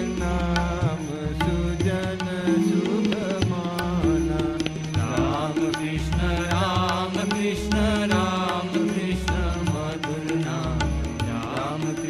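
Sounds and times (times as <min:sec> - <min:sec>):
drum beats: 0:00.0 - 0:11.8
person singing ornamented notes: 0:00.0 - 0:12.0.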